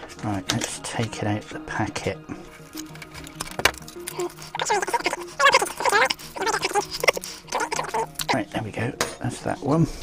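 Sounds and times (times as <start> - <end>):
faint background music: 0.0 - 10.0
plastic packet crinkling: 2.5 - 8.4.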